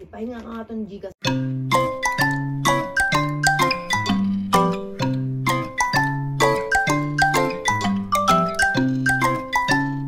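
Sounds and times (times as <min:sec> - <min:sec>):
chiming bell-like melody: 0:01.3 - 0:10.0.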